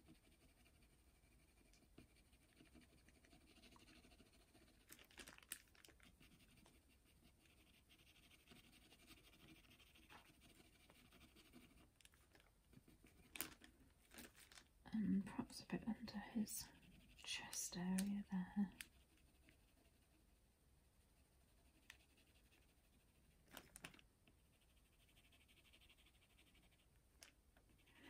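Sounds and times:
pencil scratching on paper: 0.0s - 4.9s, 6.0s - 11.9s, 16.7s - 18.0s, 21.6s - 23.2s, 24.5s - 26.9s.

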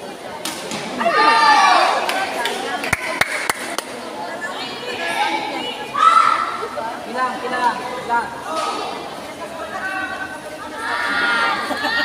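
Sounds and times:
voices chattering in echoing hall: 0.0s - 12.0s.

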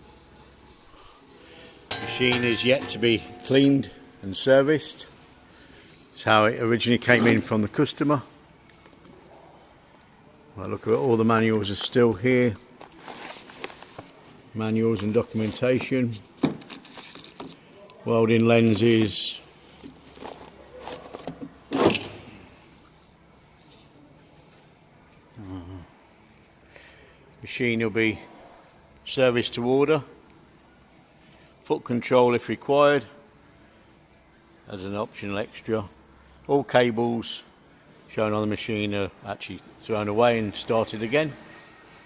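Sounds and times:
faint handling rustles: 11.4s - 17.7s, 18.6s - 21.9s.

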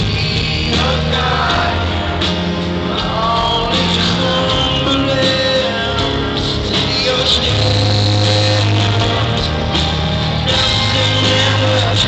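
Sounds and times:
drums: 0.0s - 12.0s
live rock band: 0.0s - 12.0s
piano: 0.0s - 12.0s
person singing: 0.4s - 12.0s.

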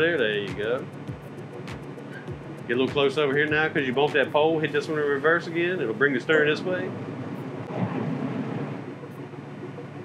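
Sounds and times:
boat engines low rumble: 0.0s - 10.0s.

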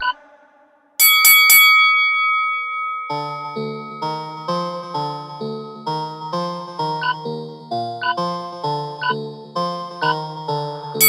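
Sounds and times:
timer bell ringing: 1.0s - 6.4s.

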